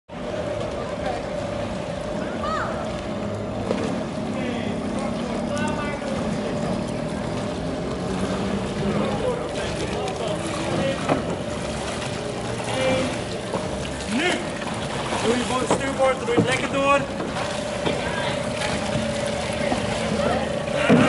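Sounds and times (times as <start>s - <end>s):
distant voices: 0.1s - 21.0s
engine hum: 0.1s - 21.0s
noisy wash: 0.1s - 21.0s.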